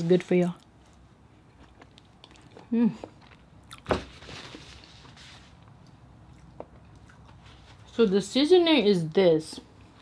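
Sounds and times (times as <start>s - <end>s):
close chewing: 0.2s - 3.9s, 5.6s - 8.0s.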